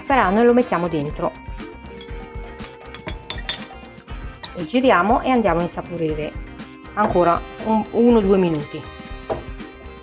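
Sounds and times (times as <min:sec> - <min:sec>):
soft background music: 0:00.0 - 0:10.0
metal spoon clinking ceramic dish: 0:01.9 - 0:04.7.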